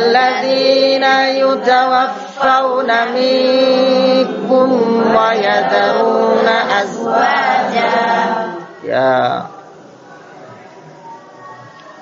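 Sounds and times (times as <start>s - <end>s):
group of voices chanting: 0.0s - 8.8s.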